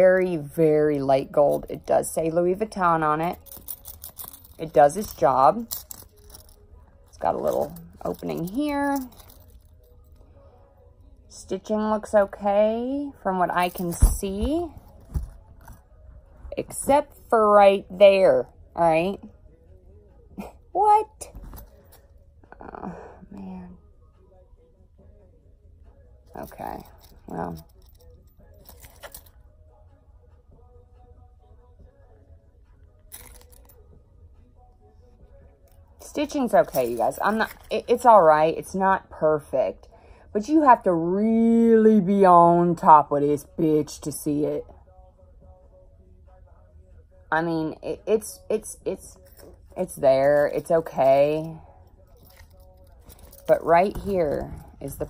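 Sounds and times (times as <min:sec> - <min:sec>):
low steady hum: 0:00.0 - 0:55.0
soft rustle of key holder: 0:03.3 - 0:10.2, 0:21.3 - 0:22.2, 0:26.3 - 0:29.5, 0:32.8 - 0:33.9, 0:34.8 - 0:37.8, 0:49.2 - 0:55.0.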